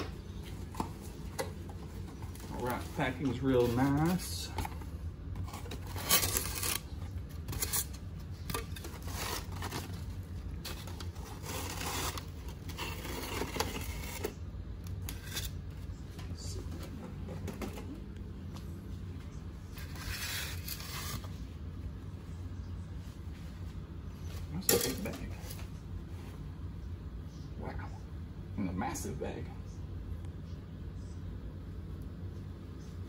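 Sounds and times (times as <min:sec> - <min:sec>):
low hum: 0:00.0 - 0:33.0.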